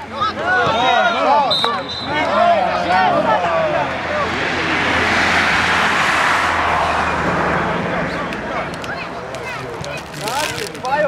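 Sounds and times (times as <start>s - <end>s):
vehicle passing by: 2.4s - 10.6s.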